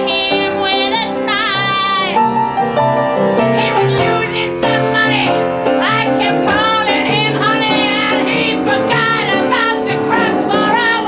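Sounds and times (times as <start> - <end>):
woman singing with vibrato: 0.0 - 2.2, 3.6 - 11.0
piano chords: 0.0 - 11.0.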